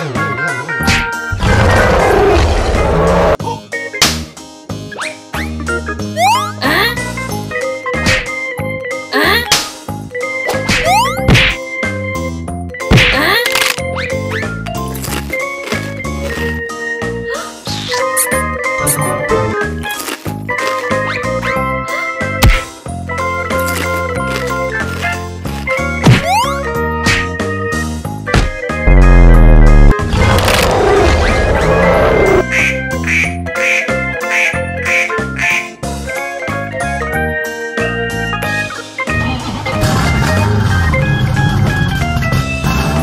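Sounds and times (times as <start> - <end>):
upbeat background music: 3.8 - 29.9
duck quacks: 32.5 - 35.7.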